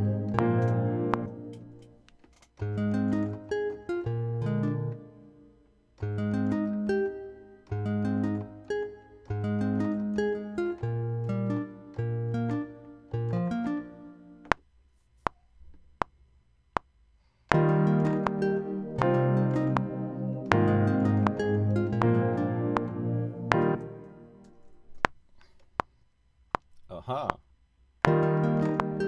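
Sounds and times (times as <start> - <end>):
guitar and piano beat: 0.0 - 2.0, 2.6 - 5.2, 6.0 - 14.1, 17.5 - 24.7, 28.1 - 29.0
metronome clicks: 0.0 - 3.5, 17.5 - 24.7, 28.1 - 29.0.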